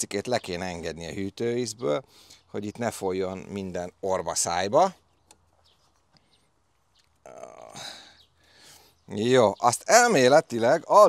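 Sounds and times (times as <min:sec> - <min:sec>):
man's throaty vocal sound: 0:07.3 - 0:08.0.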